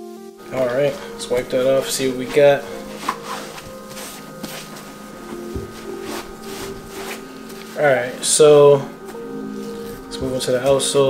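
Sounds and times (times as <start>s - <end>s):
faint background music: 0.0s - 11.0s
cloth rubbing sneaker: 0.4s - 11.0s.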